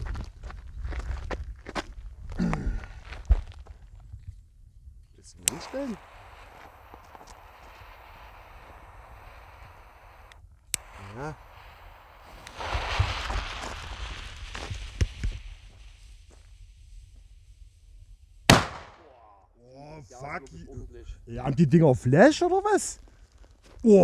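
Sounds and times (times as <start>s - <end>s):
footsteps on gravel: 0.0s - 2.4s
jet-flame lighter hissing: 5.3s - 16.3s
loud firework bang: 10.8s - 15.4s, 18.5s - 19.0s.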